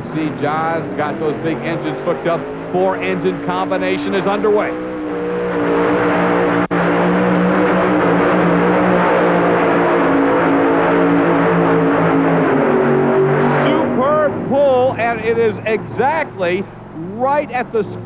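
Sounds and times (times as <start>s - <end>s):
pulling tractor engines roaring: 0.0s - 18.0s.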